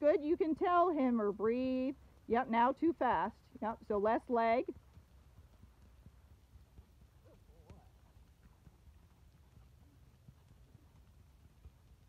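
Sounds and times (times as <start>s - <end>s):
horse hoofbeats at a walk: 0.0s - 12.0s.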